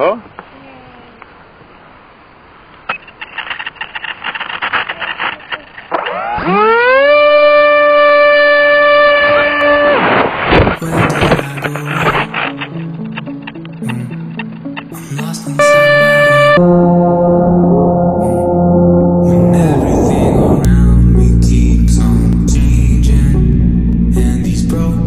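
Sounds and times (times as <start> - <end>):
noisy clatter: 2.8 - 6.4
background music with low notes: 10.8 - 25.0.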